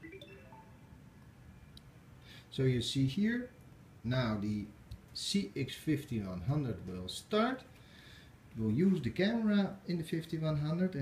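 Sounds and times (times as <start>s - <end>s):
faint electronic chime: 0.0s - 1.8s.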